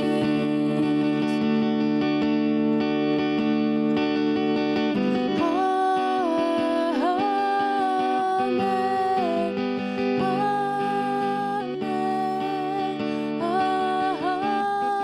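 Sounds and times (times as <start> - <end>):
woman singing: 0.0 - 2.0, 5.2 - 15.0
acoustic guitar: 0.0 - 15.0.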